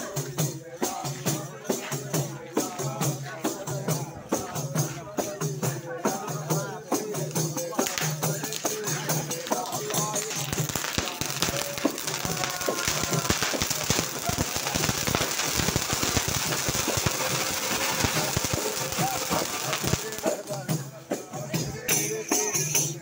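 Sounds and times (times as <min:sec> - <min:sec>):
fireworks hissing and crackling: 0:00.0 - 0:23.0
frame drums beaten: 0:00.0 - 0:23.0
voices: 0:00.0 - 0:23.0.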